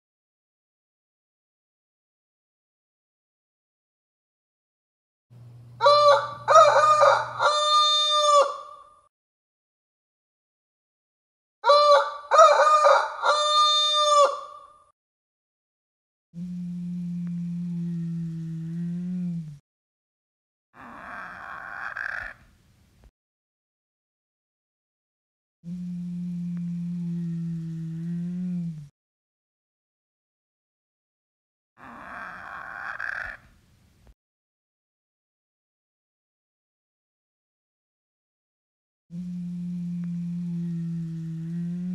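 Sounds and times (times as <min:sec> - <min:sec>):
low steady hum: 0:05.3 - 0:07.8, 0:16.4 - 0:19.6, 0:25.7 - 0:28.9, 0:39.2 - 0:41.9
shrill crowing dinosaur calls: 0:05.8 - 0:09.0, 0:11.6 - 0:14.8, 0:20.8 - 0:22.4, 0:31.8 - 0:33.5
toy dinosaur growl: 0:20.8 - 0:22.3, 0:31.8 - 0:33.4.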